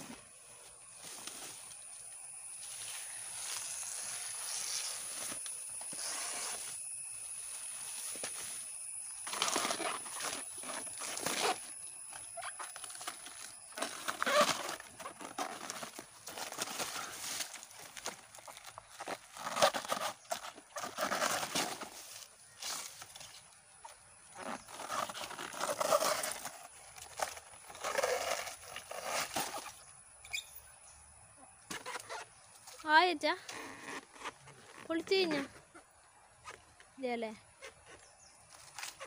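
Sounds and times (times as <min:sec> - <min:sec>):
plant layers tearing and rustling: 0:08.1 - 0:23.4, 0:24.4 - 0:29.8, 0:37.6 - 0:39.0.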